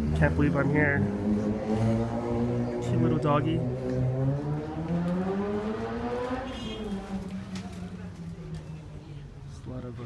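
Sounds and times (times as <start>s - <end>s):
vehicle engine droning: 0.0s - 10.0s.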